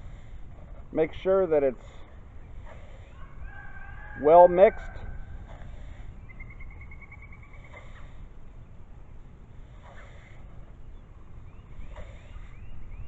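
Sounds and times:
wind rumble on microphone: 0:02.0 - 0:13.0
songbird trilling: 0:06.2 - 0:08.1.

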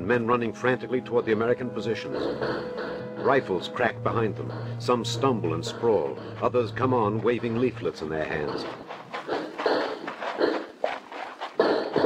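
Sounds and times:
man panting: 0:01.1 - 0:03.6, 0:04.2 - 0:07.7, 0:08.3 - 0:12.0.

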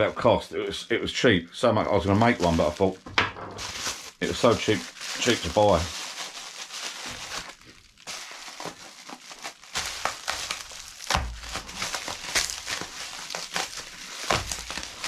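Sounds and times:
bubble wrap crinkling: 0:01.9 - 0:15.0.

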